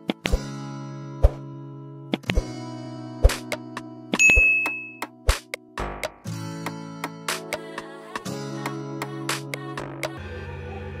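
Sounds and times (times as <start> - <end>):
background music with clicks: 0.0 - 0.5, 2.1 - 2.6, 3.2 - 7.9
bell-like ding: 4.2 - 5.0.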